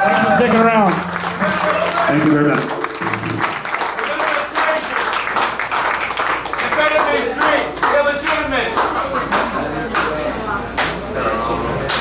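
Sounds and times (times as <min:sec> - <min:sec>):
audience clapping: 0:00.0 - 0:11.0
crowd voices: 0:00.0 - 0:12.0.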